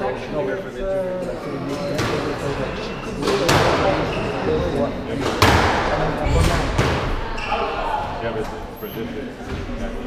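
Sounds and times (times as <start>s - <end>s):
people talking: 0.0s - 10.0s
squash ball hitting court walls: 2.0s - 2.4s, 3.2s - 4.1s, 5.2s - 7.3s.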